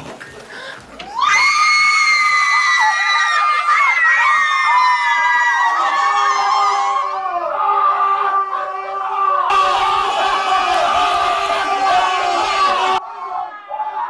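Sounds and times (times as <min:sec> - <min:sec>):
women screaming with delight: 0:01.1 - 0:07.5.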